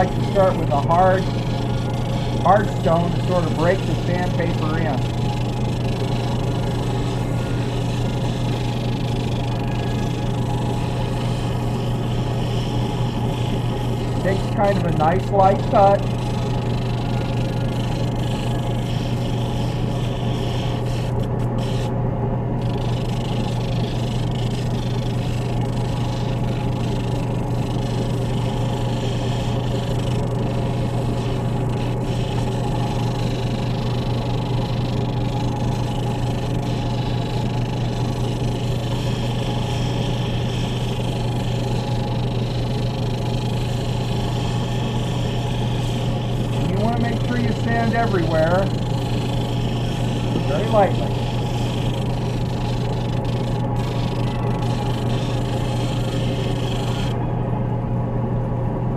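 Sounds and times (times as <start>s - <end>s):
electric motor hum: 0.0s - 58.9s.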